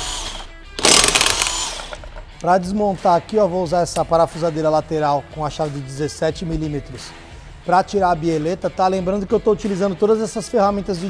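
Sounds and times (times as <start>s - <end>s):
impact wrench hammering: 0.0s - 2.4s.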